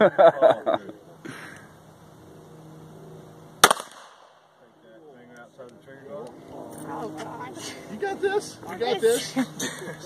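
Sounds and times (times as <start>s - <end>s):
pistol shot: 3.6s - 4.4s.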